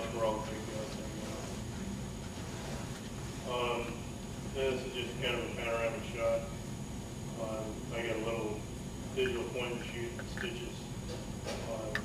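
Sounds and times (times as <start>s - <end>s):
thin high whine: 0.0s - 11.9s.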